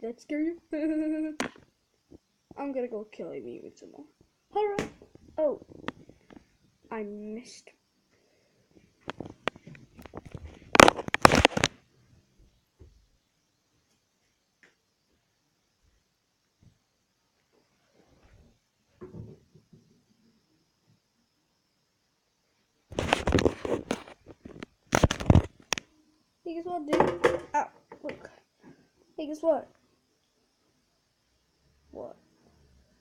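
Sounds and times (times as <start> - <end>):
rustling and scraping on microphone: 5.1 - 6.6, 8.8 - 11.8, 22.9 - 25.8
plastic toy figures knocking: 26.9 - 27.6.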